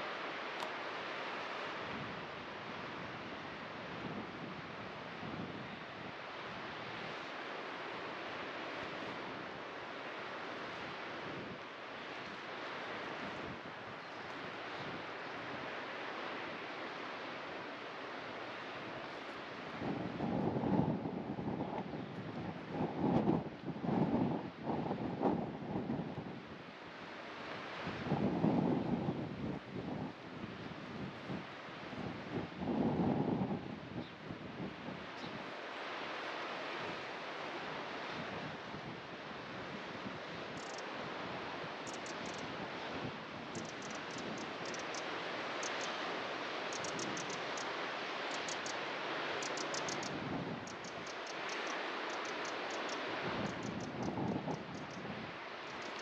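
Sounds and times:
sea surf: 0.0s - 56.0s
wind buffeting microphone: 19.6s - 26.6s, 27.8s - 35.5s, 49.5s - 51.2s, 53.0s - 56.0s
faint high ticks: 40.6s - 40.8s, 41.8s - 42.4s, 43.6s - 46.0s, 46.7s - 47.7s, 48.3s - 48.8s, 49.4s - 55.0s.

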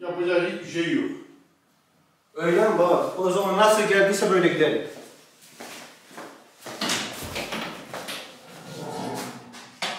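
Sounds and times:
footsteps: 4.9s - 9.8s.

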